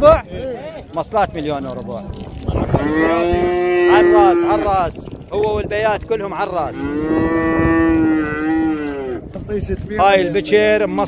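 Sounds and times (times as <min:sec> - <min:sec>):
calf mooing: 0:01.8 - 0:04.8, 0:06.7 - 0:09.3.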